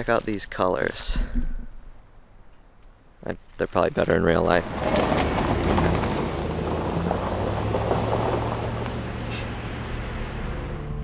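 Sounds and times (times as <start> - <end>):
cars driving past: 4.6 - 11.0.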